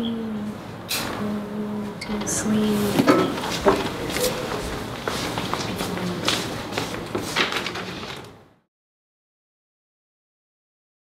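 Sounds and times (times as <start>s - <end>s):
rustling of people moving: 0.5s - 8.5s.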